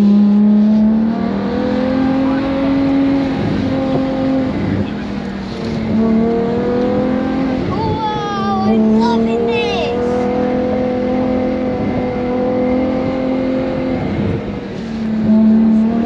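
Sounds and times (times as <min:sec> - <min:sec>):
car engine running: 0:00.0 - 0:16.0.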